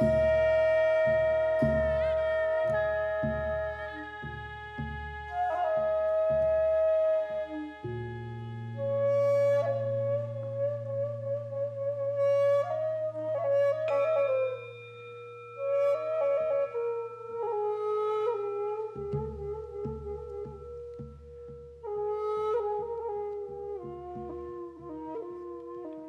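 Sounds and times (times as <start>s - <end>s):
bamboo flute melody: 0.0s - 26.0s
soft low percussion: 0.0s - 26.0s.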